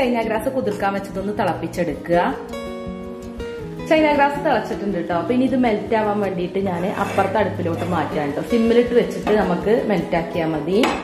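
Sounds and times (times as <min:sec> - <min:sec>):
metal saucepan clattering: 0:06.8 - 0:09.7.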